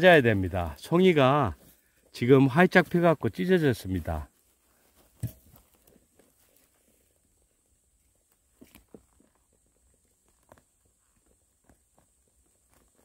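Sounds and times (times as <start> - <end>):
faint rustles: 4.2 - 13.0.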